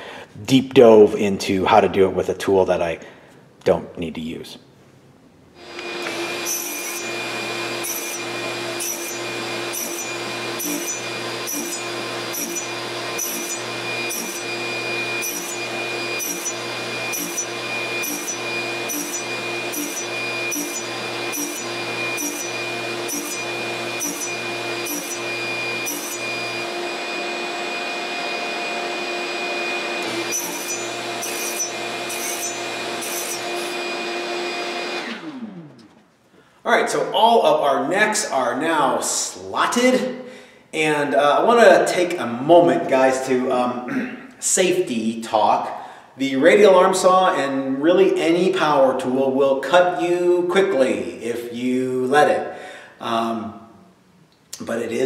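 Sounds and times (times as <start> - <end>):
radial arm saw whining: 5.6 - 35.9.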